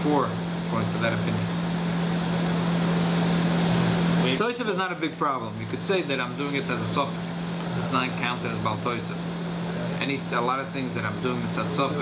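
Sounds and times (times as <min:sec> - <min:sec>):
air conditioner rushing air: 0:00.0 - 0:12.0.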